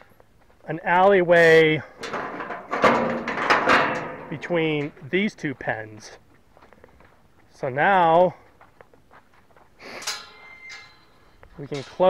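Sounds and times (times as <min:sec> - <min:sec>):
metal gate scrape and clank: 0:02.0 - 0:05.0, 0:09.9 - 0:12.0
pipe ringing: 0:10.0 - 0:11.2.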